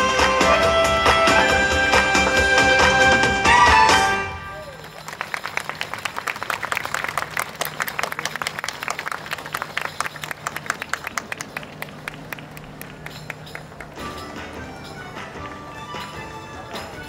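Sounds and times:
audience applauding: 4.6 - 14.0.

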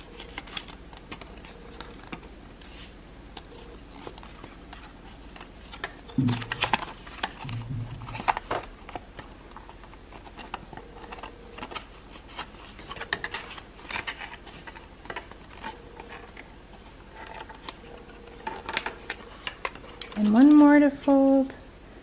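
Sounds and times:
paper folding and creasing: 0.0 - 20.7.

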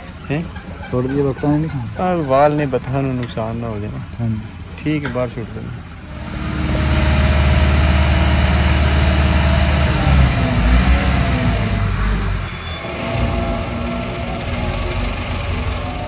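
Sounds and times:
engine running low rumble: 0.0 - 16.0.

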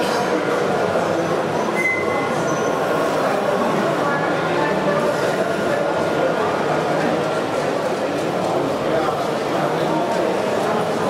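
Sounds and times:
exhibition hall din: 0.0 - 11.0.

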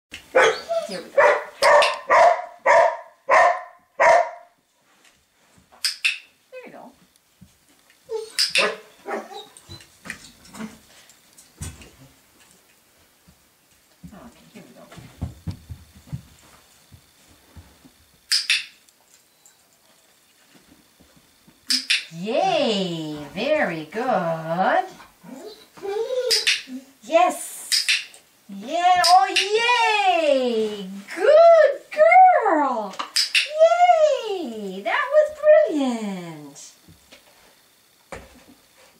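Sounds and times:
dog howling and whining: 0.4 - 1.1, 8.1 - 8.4, 9.0 - 9.8, 25.2 - 26.3
young dog barking: 0.4 - 4.5, 8.6 - 9.5
sharp bark-like sound: 1.2 - 4.5, 8.4 - 9.3.

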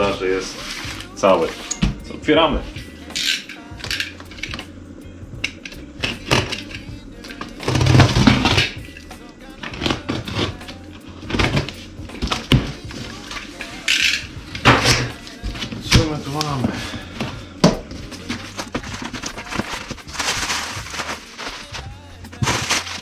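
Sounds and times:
background music: 0.0 - 23.0
packing tape cut and torn: 5.5 - 8.8, 9.6 - 16.5, 17.8 - 23.0.

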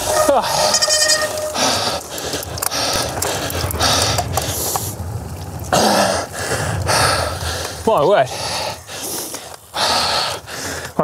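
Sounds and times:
tyres on gravel: 0.0 - 11.0
wind rumble: 0.0 - 11.0
person breathing hard: 1.5 - 5.0, 5.8 - 11.0.

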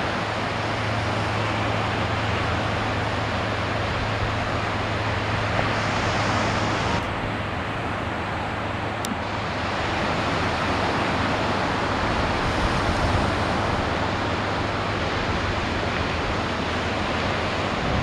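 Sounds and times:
ocean surf breaking: 0.0 - 18.0
wind: 0.0 - 18.0.

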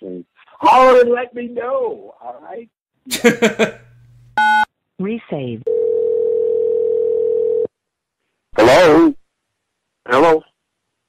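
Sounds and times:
telephone line tone: 5.7 - 7.7.

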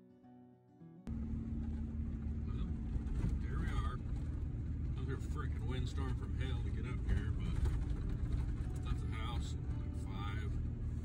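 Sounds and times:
vehicle rumble on snowy road: 1.1 - 11.0.

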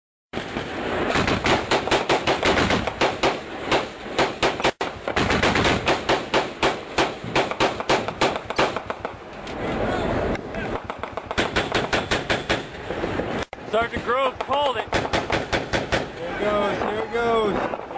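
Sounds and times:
automatic gunfire: 1.1 - 9.2, 10.8 - 12.7, 14.9 - 16.2.

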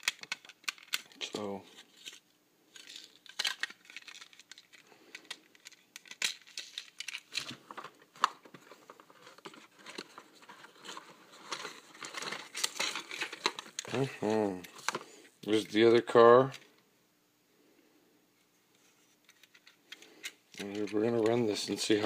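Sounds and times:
plastic wrapping crinkling: 0.0 - 15.2.

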